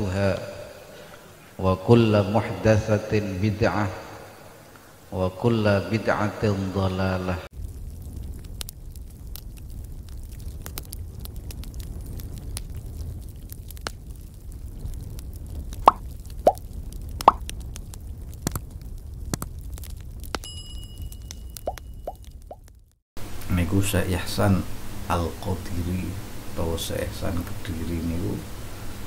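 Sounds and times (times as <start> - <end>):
bright ringing chime: 20.4 - 22.1.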